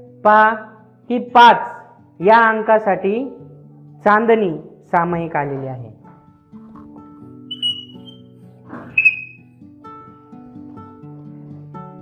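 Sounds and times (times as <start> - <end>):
soft background music: 0.0 - 12.0
chalk scratch: 7.5 - 8.2
chalk squealing on blackboard: 7.5 - 8.2, 8.8 - 9.4.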